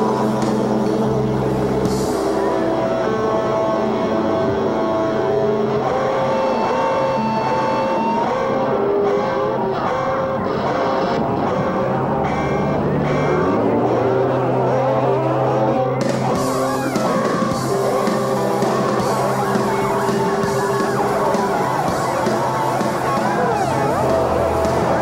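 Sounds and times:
electric guitars droning feedback: 0.0s - 25.0s.

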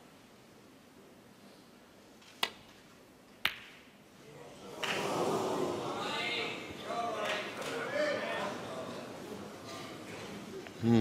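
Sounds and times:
murmur of voices: 4.2s - 11.0s.

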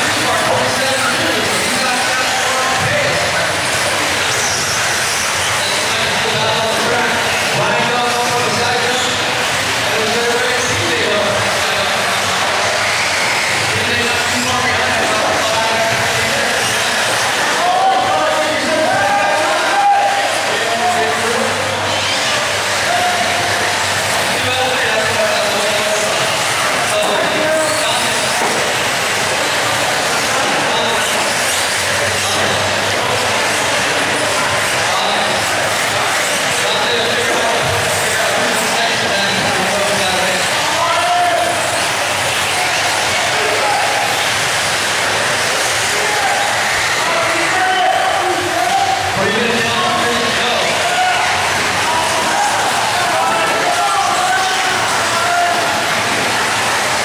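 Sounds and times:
rc car engines revving and whining: 0.0s - 57.0s.

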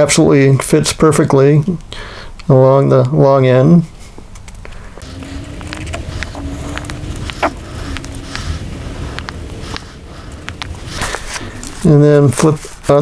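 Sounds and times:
steady low rumble: 5.0s - 12.7s.

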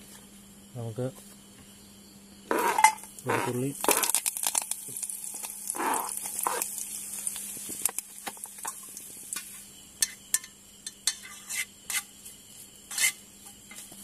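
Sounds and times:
onions sizzling in hot oil: 2.6s - 13.8s
steel spoon scraping a pan: 10.0s - 12.2s, 12.8s - 13.9s.

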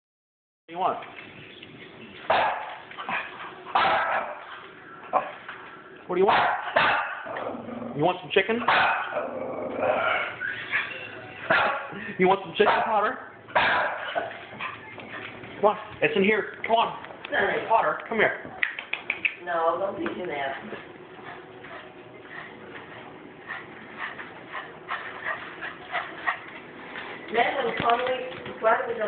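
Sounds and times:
small dog barking: 2.3s - 2.8s, 3.7s - 4.4s, 6.3s - 7.3s, 8.7s - 9.2s, 11.5s - 11.9s, 13.6s - 14.2s.

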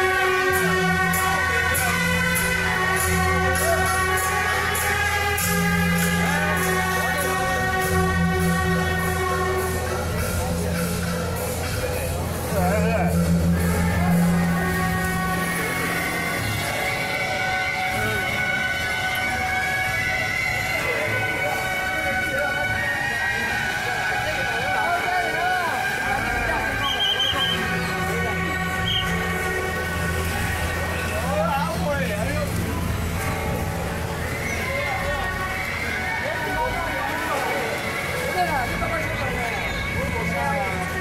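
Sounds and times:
shrill reed horns: 0.0s - 41.0s
street voices: 0.0s - 41.0s
wind instruments holding notes: 0.0s - 41.0s.

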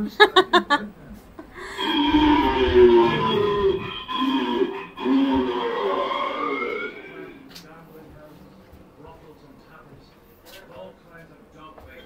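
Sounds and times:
wavering moaning voice: 1.5s - 7.6s.

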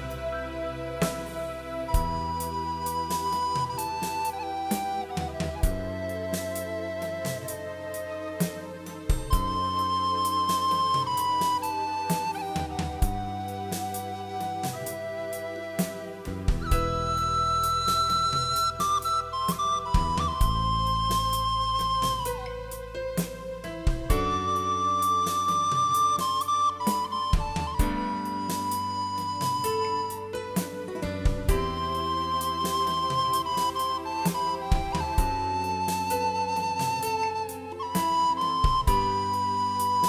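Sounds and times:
backing track with bass and drums: 0.0s - 40.0s
wooden recorder melody: 0.0s - 40.0s.

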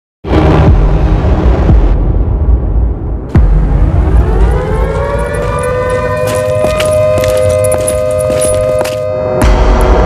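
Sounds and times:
siren wailing: 4.0s - 9.0s.

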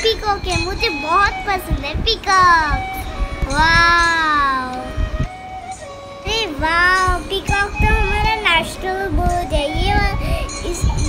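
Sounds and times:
child singing: 0.0s - 5.0s, 6.2s - 11.0s.

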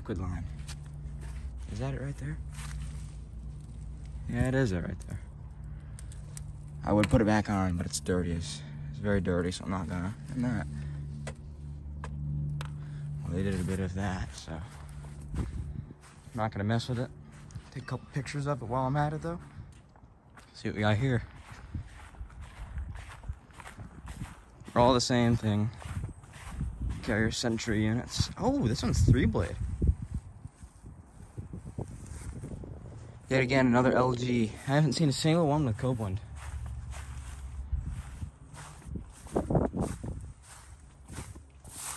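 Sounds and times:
low mechanical hum: 0.0s - 33.6s, 34.5s - 41.9s
wind buffeting microphone: 13.8s - 16.8s, 21.3s - 34.2s, 36.1s - 41.5s.

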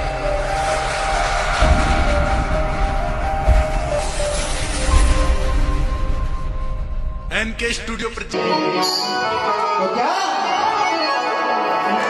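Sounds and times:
rushing whoosh effect: 0.0s - 7.2s
deep bass booms: 0.0s - 7.3s.

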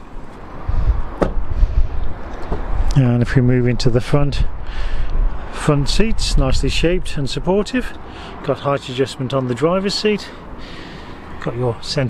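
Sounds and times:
wind and handling noise: 0.0s - 8.4s
car door shutting: 1.1s - 1.5s, 2.3s - 2.8s.

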